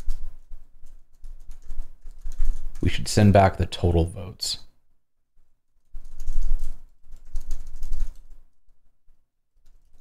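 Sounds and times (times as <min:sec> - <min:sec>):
typing on computer keyboard: 0:00.0 - 0:02.9, 0:05.8 - 0:08.8, 0:09.6 - 0:10.0.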